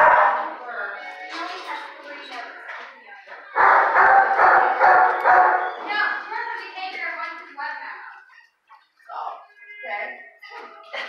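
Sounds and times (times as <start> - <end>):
dog barking: 0.0 - 0.6, 3.6 - 5.8.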